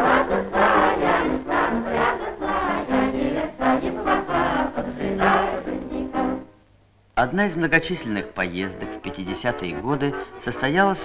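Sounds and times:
choir of young voices singing: 0:00.0 - 0:06.5.

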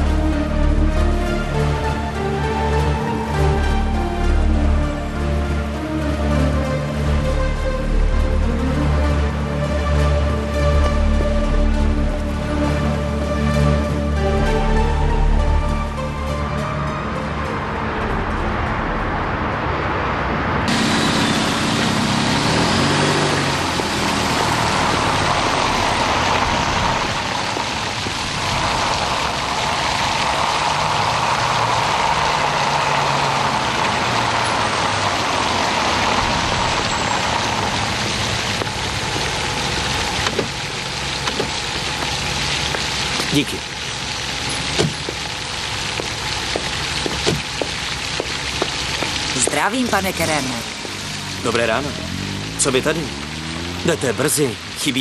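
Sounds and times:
fountain splashing: 0:00.0 - 0:19.3, 0:20.6 - 0:55.0
car driving up: 0:00.0 - 0:55.0
sharp knocks: 0:44.5 - 0:45.2, 0:46.0 - 0:48.8.

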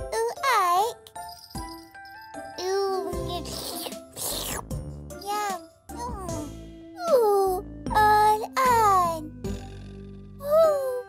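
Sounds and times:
gentle children's music: 0:00.0 - 0:11.0.

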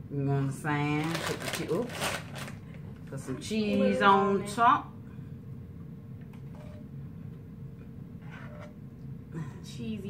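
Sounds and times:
plastic snack bag crinkling: 0:01.0 - 0:02.8.

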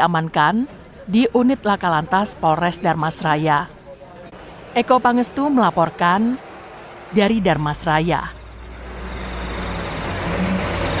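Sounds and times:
vehicle passing close by: 0:08.4 - 0:11.0.

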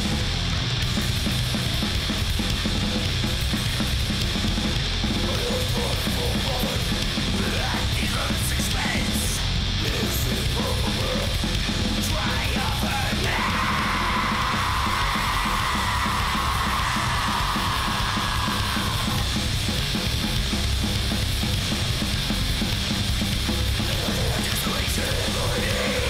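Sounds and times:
crust punk music: 0:00.0 - 0:26.0
harsh bright distorted layer: 0:00.0 - 0:26.0.

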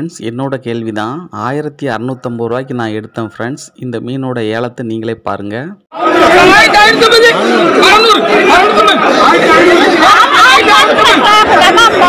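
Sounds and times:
overlapping chatter of people: 0:05.9 - 0:12.0.

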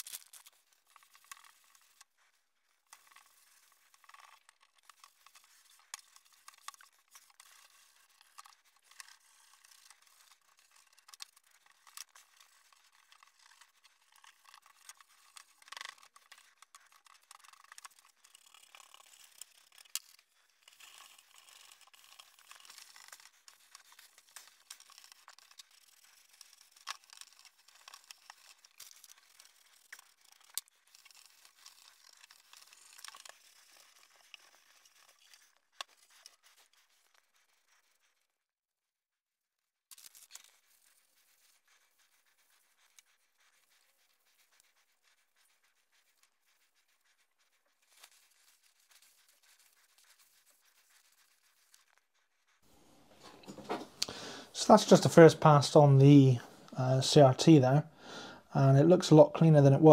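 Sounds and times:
wet wipe rubbing plastic case: 0:00.0 - 0:38.4, 0:39.9 - 0:59.9.

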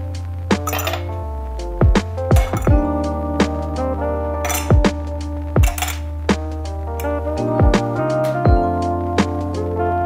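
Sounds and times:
background music with bass drum: 0:00.0 - 0:10.0
ice cubes clinking in glass: 0:00.7 - 0:01.1, 0:04.5 - 0:04.8, 0:05.6 - 0:06.0.

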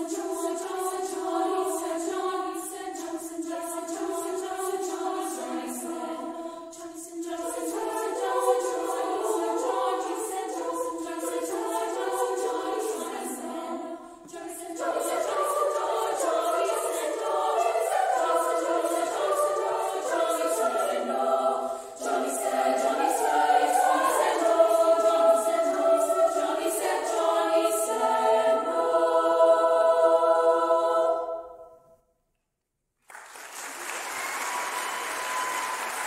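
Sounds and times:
women's choir singing: 0:00.0 - 0:32.0.

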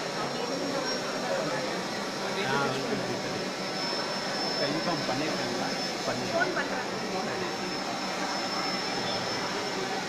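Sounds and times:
drone propellers whining: 0:00.0 - 0:10.0
murmur of large crowd: 0:00.0 - 0:10.0.

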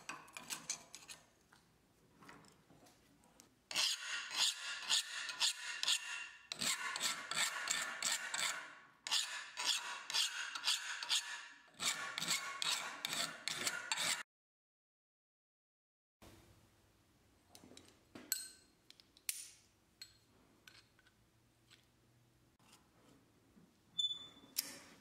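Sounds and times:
file scraping steel: 0:00.0 - 0:01.3, 0:03.7 - 0:14.2.

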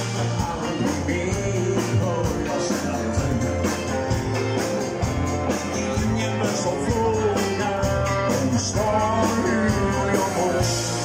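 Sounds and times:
live dance band music: 0:00.0 - 0:11.0.

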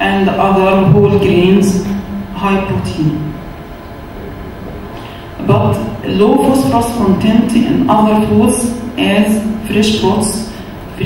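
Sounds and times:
low room hum and hiss: 0:00.0 - 0:11.0.

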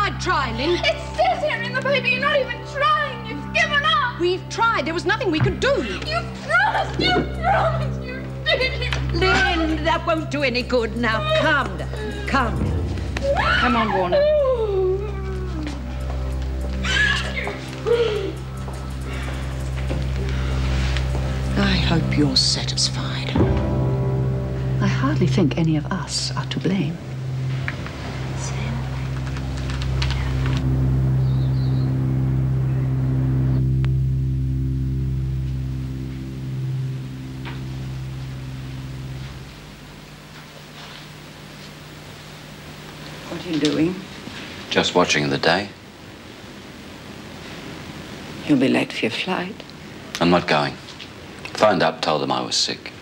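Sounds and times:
low sustained music chords: 0:00.0 - 0:53.0
woman sobbing and wailing: 0:05.7 - 0:09.8, 0:11.0 - 0:12.5, 0:13.2 - 0:15.8, 0:16.8 - 0:18.4.

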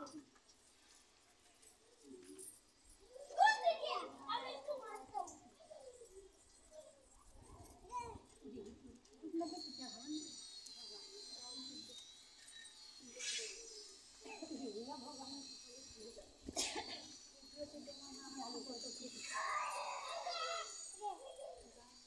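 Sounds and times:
faint chatter of voices: 0:00.0 - 0:22.0.

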